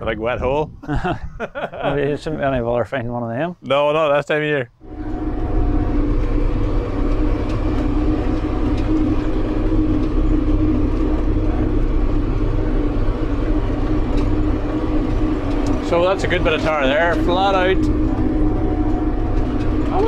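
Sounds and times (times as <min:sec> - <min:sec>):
tractor diesel engine droning: 0:04.8 - 0:20.0.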